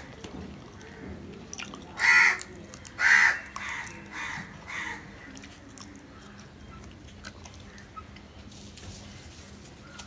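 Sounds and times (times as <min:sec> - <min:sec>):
crow cawing: 0:02.0 - 0:02.4, 0:03.0 - 0:05.1.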